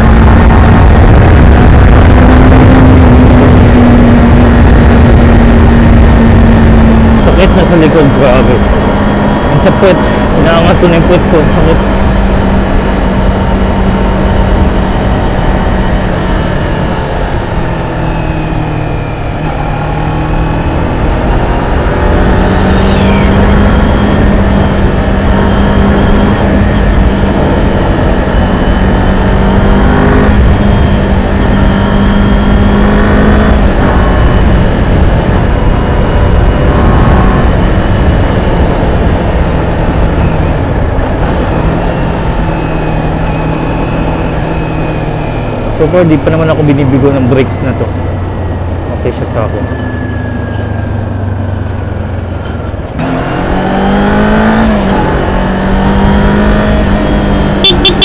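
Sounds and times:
heavy wind noise: 0:00.0 - 0:58.0
motorcycle engine at highway speed: 0:00.0 - 0:58.0.

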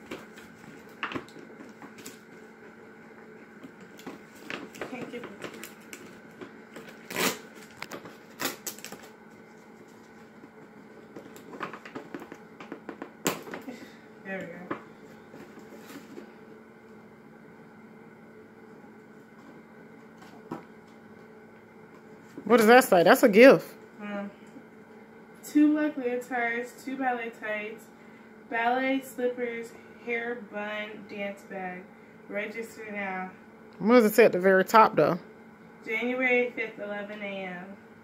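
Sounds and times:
low room hum: 0:00.0 - 0:38.0.

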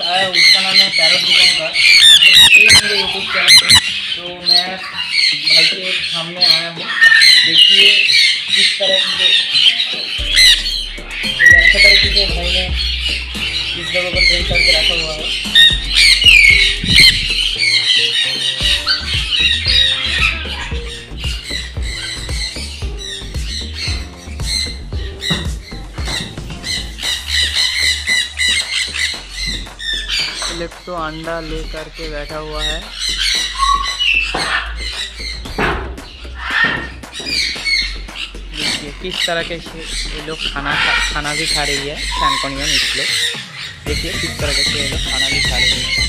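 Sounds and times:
parrots squawking loudly: 0:00.0 - 0:30.7, 0:31.4 - 0:46.0.

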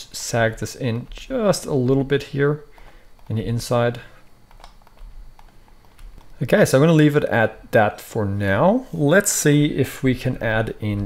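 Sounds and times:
low room hum: 0:00.0 - 0:11.0
keyboard and mouse clicks: 0:02.7 - 0:03.4, 0:04.5 - 0:06.4.

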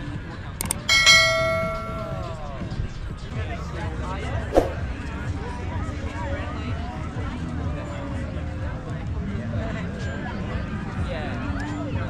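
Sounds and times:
bright bell ding: 0:00.7 - 0:02.4.

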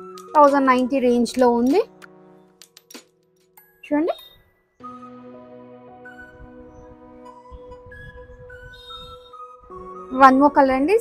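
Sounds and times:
soft background music: 0:00.0 - 0:11.0
woman speaking: 0:00.4 - 0:01.9, 0:03.9 - 0:04.3, 0:10.1 - 0:11.0.

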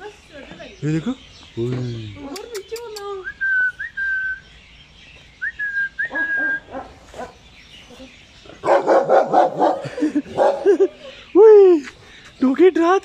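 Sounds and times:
dogs barking: 0:06.0 - 0:07.4, 0:08.5 - 0:11.1.

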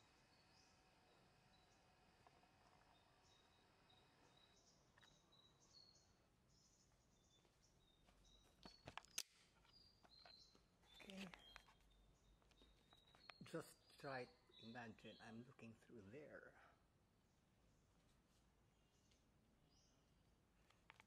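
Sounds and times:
faint high bird chirps: 0:00.0 - 0:18.0
sharp clicks: 0:08.6 - 0:10.3.

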